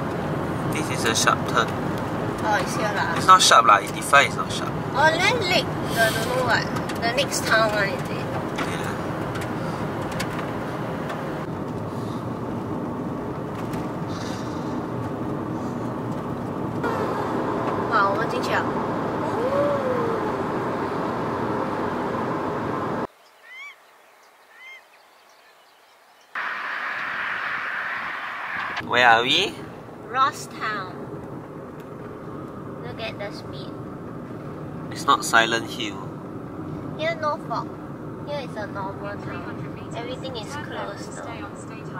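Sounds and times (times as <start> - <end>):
car cabin road and engine noise: 0.0 - 23.1, 26.3 - 41.9.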